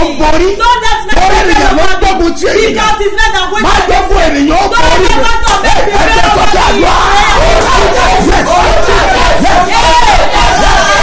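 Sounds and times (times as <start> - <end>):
man shouting: 0.0 - 11.0
many voices praying aloud: 0.0 - 11.0.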